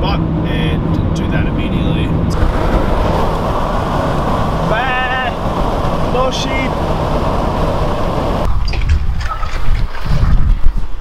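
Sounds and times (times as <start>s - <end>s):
road and engine noise: 0.0s - 11.0s.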